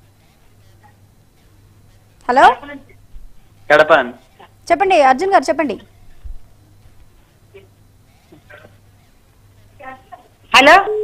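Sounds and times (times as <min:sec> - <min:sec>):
telephone line hum: 0:00.0 - 0:11.0.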